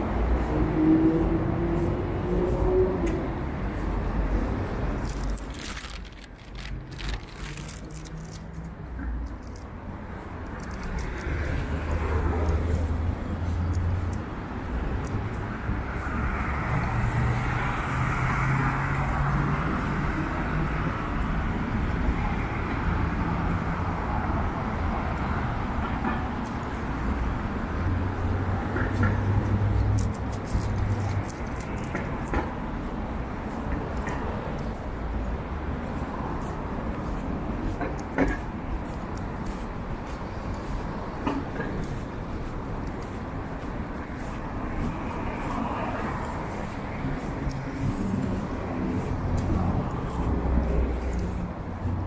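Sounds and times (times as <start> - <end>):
cars passing on wet road: 0.0 - 52.0
footsteps on snow: 41.8 - 52.0.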